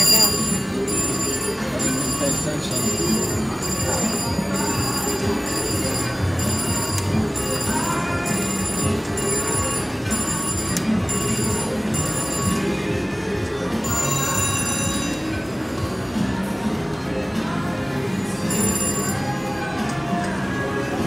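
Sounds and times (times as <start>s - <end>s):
casino floor din: 0.0s - 12.7s, 18.4s - 19.4s
slot machines chiming: 0.0s - 21.0s.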